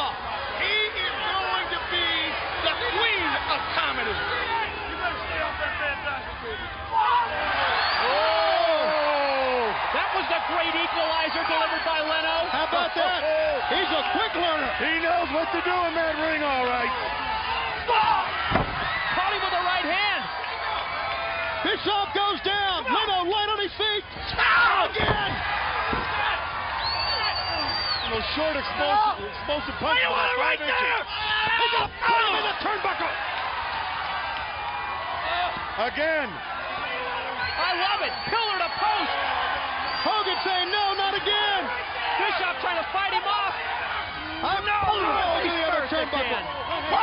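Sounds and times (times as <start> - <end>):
arena crowd noise: 0.0 - 47.0.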